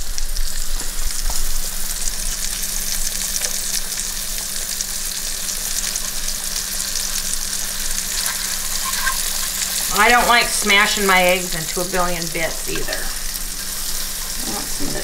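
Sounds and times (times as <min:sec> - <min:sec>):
food sizzling in frying pan: 0:00.0 - 0:15.0
steady low hum: 0:00.1 - 0:15.0
spatula scraping pan: 0:07.9 - 0:10.3.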